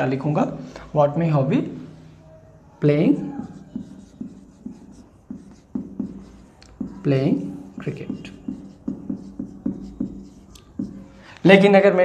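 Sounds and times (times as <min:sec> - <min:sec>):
marker scratching on whiteboard: 0:02.9 - 0:11.2.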